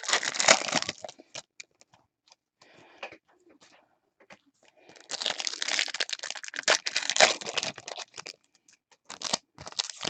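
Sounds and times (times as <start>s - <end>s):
foil wrapper crinkling: 0.0s - 1.6s, 5.0s - 10.0s.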